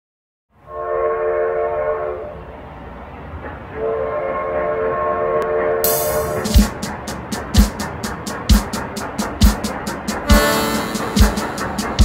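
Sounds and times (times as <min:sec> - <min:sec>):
rolling train rumble: 0:00.5 - 0:12.0
train whistle blasts: 0:00.6 - 0:02.4, 0:03.8 - 0:06.5, 0:10.3 - 0:12.0
band music: 0:05.9 - 0:12.0.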